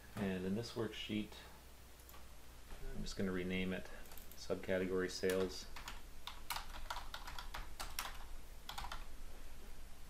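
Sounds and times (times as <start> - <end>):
typing on computer keyboard: 5.2 - 9.1.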